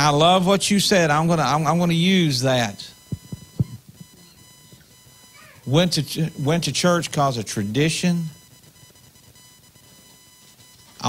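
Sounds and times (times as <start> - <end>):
faint electrical hum: 0.0 - 11.0
soft low thumps: 3.0 - 5.0.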